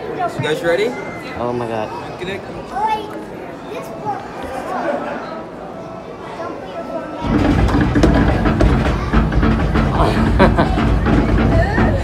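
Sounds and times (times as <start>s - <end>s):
loud deep rumbling sound: 7.2s - 12.0s
repeated knocks: 7.2s - 12.0s
music-like soundtrack: 7.3s - 12.0s.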